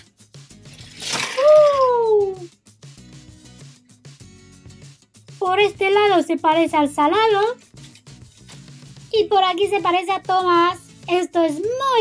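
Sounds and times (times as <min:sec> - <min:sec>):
soft background music: 0:00.0 - 0:12.0
person exclaiming ooh: 0:01.3 - 0:02.5.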